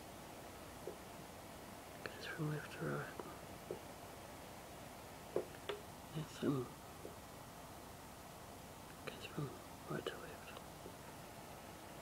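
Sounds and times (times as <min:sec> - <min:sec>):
faint room tone hiss: 0:00.0 - 0:12.0
person speaking softly: 0:02.0 - 0:03.4, 0:06.1 - 0:06.8, 0:09.0 - 0:10.7.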